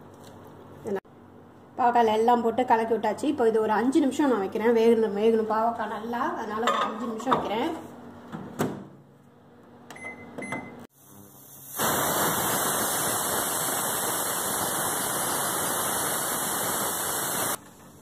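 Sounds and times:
keypad beeps: 9.9 - 10.8
pressure cooker hissing steam: 10.9 - 17.6.

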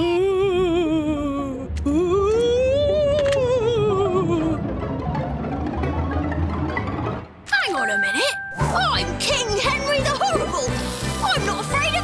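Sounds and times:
cartoon background music: 2.0 - 12.0.

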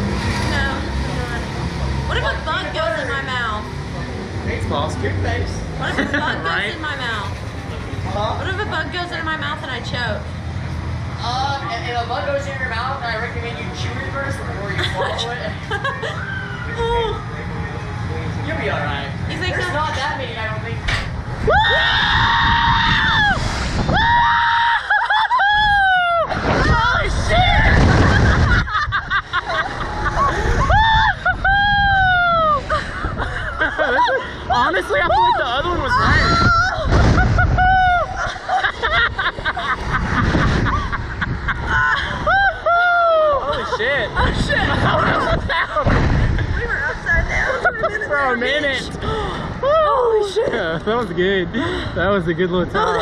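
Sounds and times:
people talking: 0.4 - 10.2, 11.2 - 21.0, 43.5 - 53.0
low rumble: 15.5 - 50.1
riders screaming: 16.1 - 17.2, 21.4 - 28.2
wind buffeting microphone: 20.7 - 24.4, 25.5 - 49.8.

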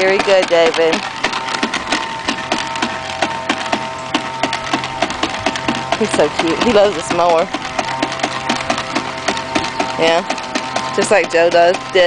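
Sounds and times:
toy lawn mower clicking: 0.0 - 12.0.

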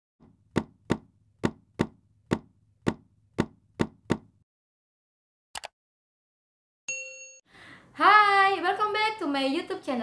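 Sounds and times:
sharp dry knocks: 0.2 - 4.4.

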